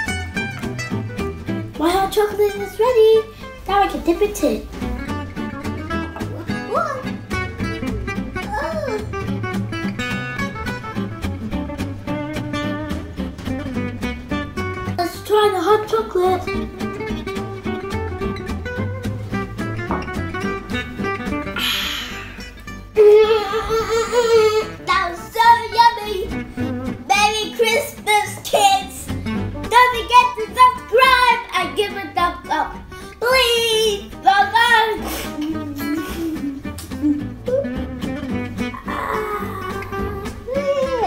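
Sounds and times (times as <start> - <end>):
instrumental guitar music: 0.0 - 41.0.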